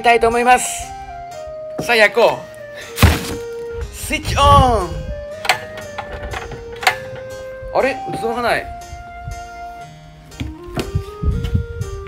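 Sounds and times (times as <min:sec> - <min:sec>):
background music with long notes: 0:00.0 - 0:12.0.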